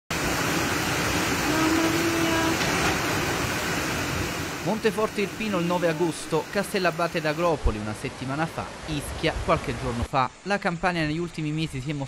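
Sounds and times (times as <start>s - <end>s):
floodwater rushing: 0.1s - 10.5s.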